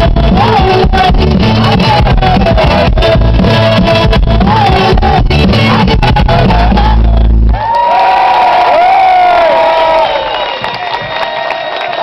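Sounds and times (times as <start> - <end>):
audience cheering with whoops: 7.6 - 12.0.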